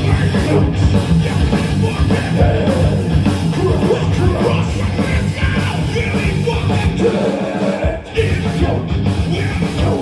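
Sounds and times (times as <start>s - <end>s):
bass guitar: 0.0s - 10.0s
distorted electric guitar: 0.0s - 10.0s
drums: 0.0s - 10.0s.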